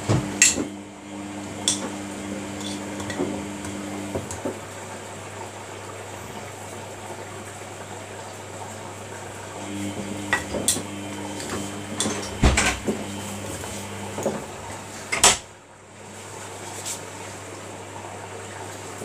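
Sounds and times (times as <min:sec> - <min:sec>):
washing machine motor whine: 0:00.0 - 0:19.0.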